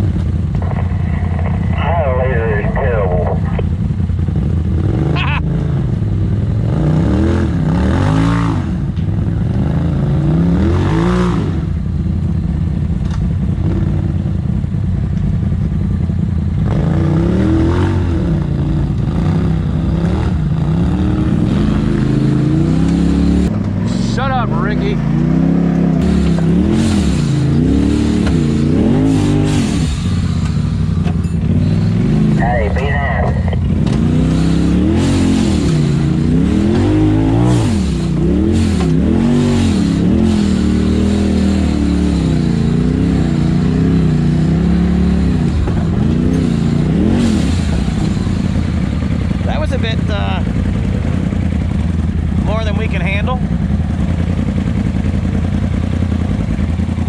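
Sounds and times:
vehicle engine revving: 0.0s - 57.0s.

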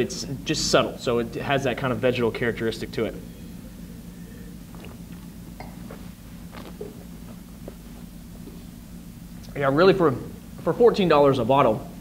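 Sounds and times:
steady low hum: 0.0s - 12.0s
wet mouth clicks sipping wine: 4.7s - 6.0s.

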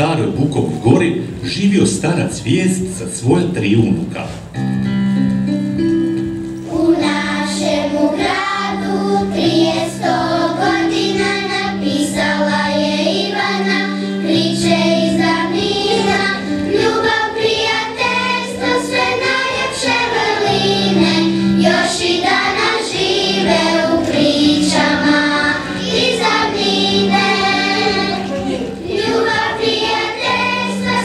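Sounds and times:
instrumental accompaniment: 0.3s - 31.0s
children singing together: 6.6s - 31.0s.

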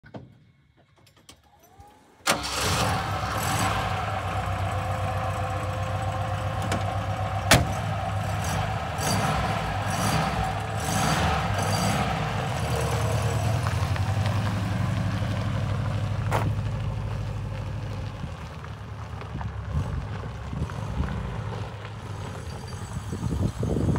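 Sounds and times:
car engine starting and idling: 1.3s - 23.9s
car door shutting: 7.5s - 7.8s.

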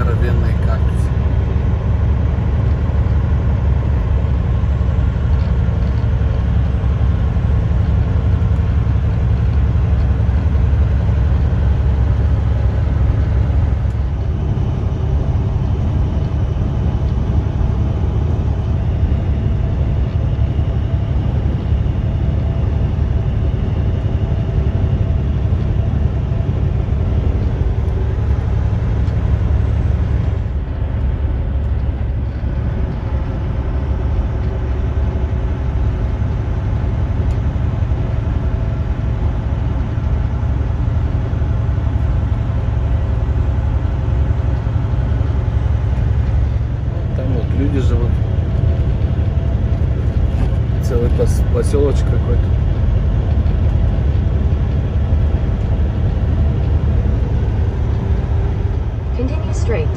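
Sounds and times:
truck engine and tyres rumbling: 0.0s - 59.9s.

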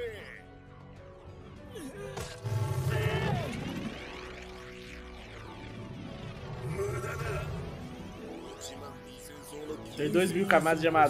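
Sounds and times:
dramatic background music: 0.0s - 11.0s.

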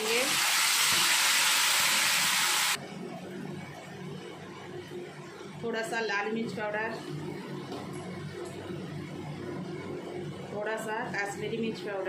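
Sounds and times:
paste sizzling in hot oil: 0.0s - 2.8s.

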